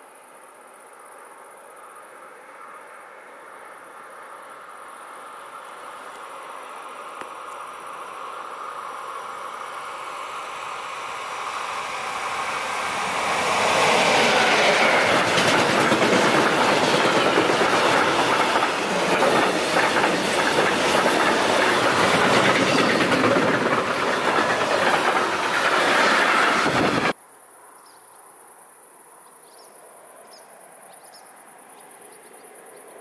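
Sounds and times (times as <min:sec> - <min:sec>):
freight train passing: 0:06.4 - 0:27.2.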